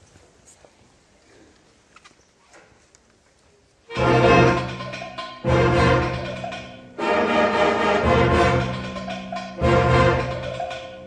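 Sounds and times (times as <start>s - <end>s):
audience room noise: 3.8s - 11.0s.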